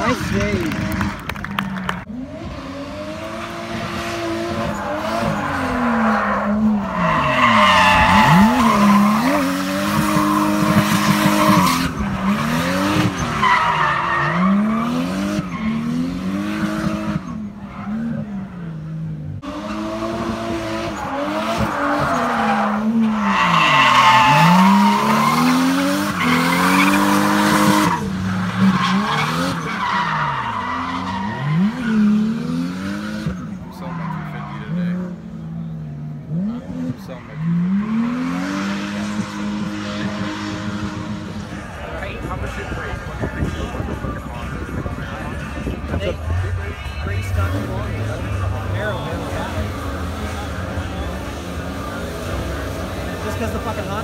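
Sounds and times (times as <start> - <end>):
tyres squealing and skidding: 0.0 - 35.2, 36.3 - 54.0
car engine revving: 0.0 - 54.0.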